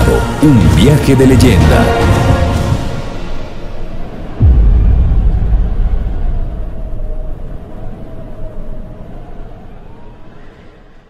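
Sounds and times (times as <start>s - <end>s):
deep cinematic boom: 4.4s - 8.5s.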